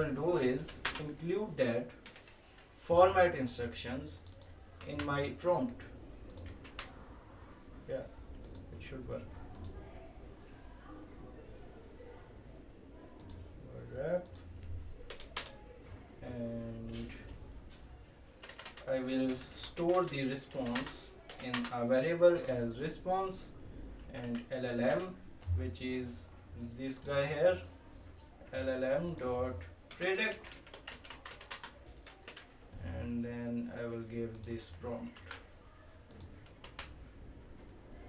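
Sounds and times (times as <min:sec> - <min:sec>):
computer keyboard keys clicking: 0:00.7 - 0:01.2, 0:02.0 - 0:02.7, 0:04.2 - 0:05.1, 0:06.2 - 0:06.9, 0:08.4 - 0:08.7, 0:09.5 - 0:09.8, 0:13.2 - 0:13.4, 0:14.2 - 0:15.6, 0:18.4 - 0:21.7, 0:24.1 - 0:25.2, 0:26.9 - 0:27.3, 0:29.0 - 0:29.3, 0:29.9 - 0:32.6, 0:34.3 - 0:35.5, 0:36.1 - 0:37.0
computer mouse clicks: 0:04.2 - 0:05.1, 0:06.2 - 0:06.9, 0:08.4 - 0:08.7, 0:09.5 - 0:09.8, 0:13.2 - 0:13.4, 0:14.2 - 0:15.6, 0:27.0 - 0:27.3, 0:29.0 - 0:29.3, 0:34.3 - 0:35.4, 0:36.1 - 0:37.0, 0:37.6 - 0:37.8.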